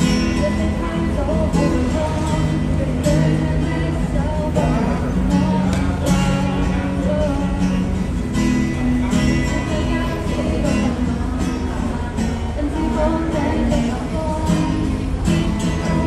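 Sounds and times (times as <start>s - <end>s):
woman singing: 0.0s - 8.1s, 8.9s - 16.0s
acoustic guitar strumming: 0.0s - 16.0s.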